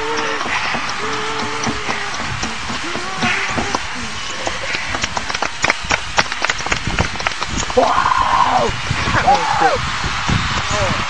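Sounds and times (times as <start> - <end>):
people clapping: 0.0 - 11.0.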